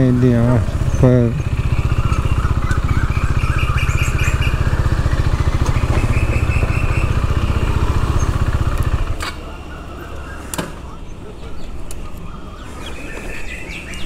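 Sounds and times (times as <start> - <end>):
motorcycle engine running: 0.0 - 11.6.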